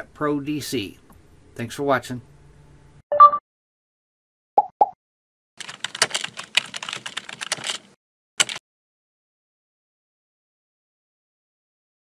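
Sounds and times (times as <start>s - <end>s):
computer keyboard typing: 5.6s - 8.6s.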